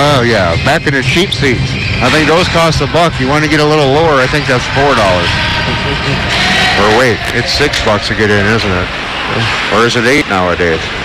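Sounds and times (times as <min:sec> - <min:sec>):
arena rumble and hiss: 0:00.0 - 0:11.0
person speaking: 0:04.1 - 0:09.7.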